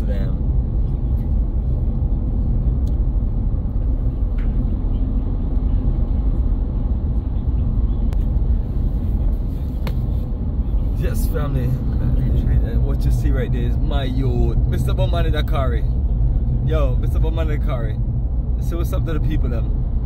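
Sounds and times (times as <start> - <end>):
car cabin road rumble: 0.0 - 20.0.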